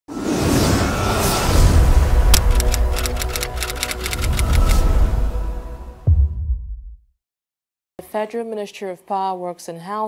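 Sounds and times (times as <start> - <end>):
sharp clicks: 2.3 - 4.8.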